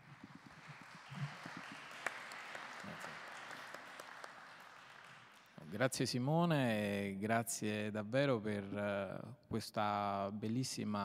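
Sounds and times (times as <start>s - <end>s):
audience applauding: 0.0s - 5.7s.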